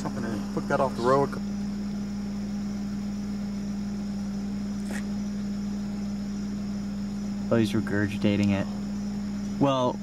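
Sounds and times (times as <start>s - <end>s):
insect trill: 0.0s - 10.0s
vehicle engine idling: 0.0s - 10.0s.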